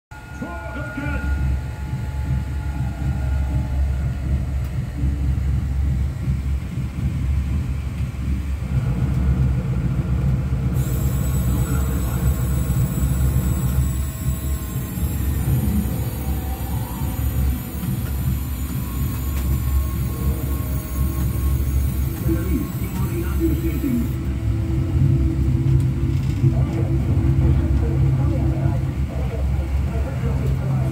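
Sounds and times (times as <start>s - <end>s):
thin high whine: 0.1s - 6.8s, 10.7s - 30.9s
steady low rumble: 0.2s - 30.9s.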